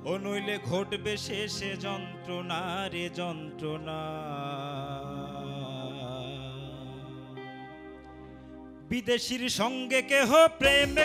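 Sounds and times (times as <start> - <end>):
man singing a long note: 0.0 - 7.6, 8.9 - 11.0
keyboard and pad chords: 0.0 - 11.0
steady keyboard notes: 0.0 - 11.0.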